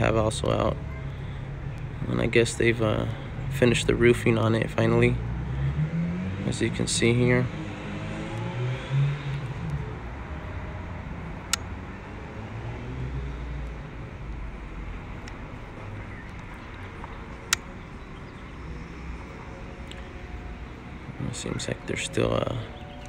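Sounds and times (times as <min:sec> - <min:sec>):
outdoor background rumble: 0:00.0 - 0:23.0
sharp clicks: 0:16.3 - 0:17.8.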